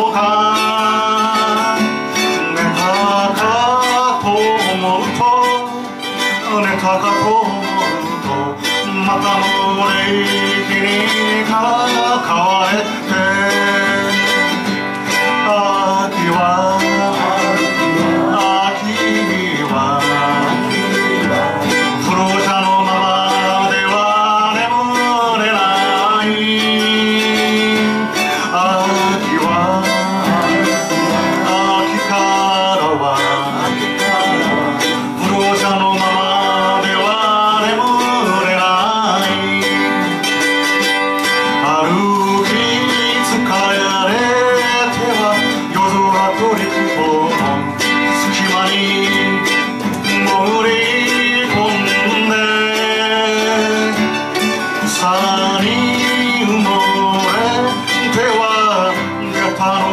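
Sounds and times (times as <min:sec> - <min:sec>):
acoustic guitar: 0:00.0 - 0:59.9
man singing: 0:00.0 - 0:59.9
mandolin: 0:00.0 - 0:59.9.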